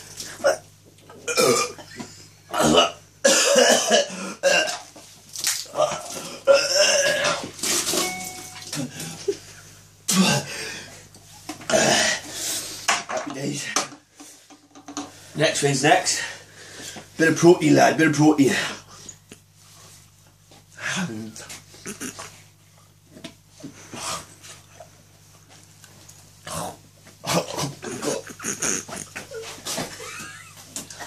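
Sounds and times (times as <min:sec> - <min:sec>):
man belching and gagging: 0:00.3 - 0:04.9, 0:05.7 - 0:07.5, 0:10.1 - 0:10.5, 0:11.7 - 0:12.2, 0:21.9 - 0:22.3, 0:26.5 - 0:29.5.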